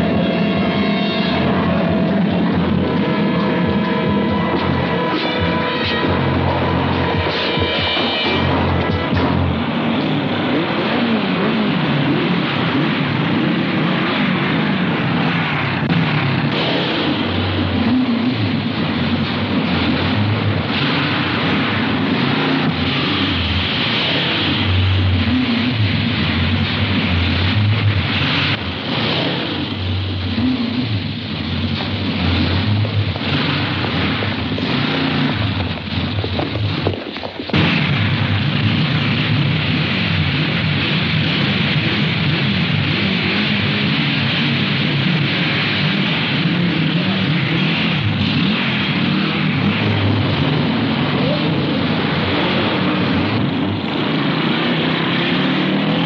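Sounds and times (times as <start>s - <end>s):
action music: 0.0s - 13.3s
vehicle engine: 0.0s - 56.0s.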